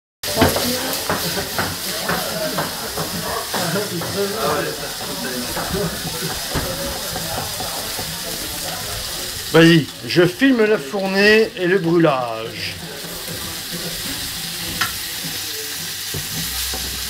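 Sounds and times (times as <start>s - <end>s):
prawns sizzling in hot oil: 0.2s - 17.0s.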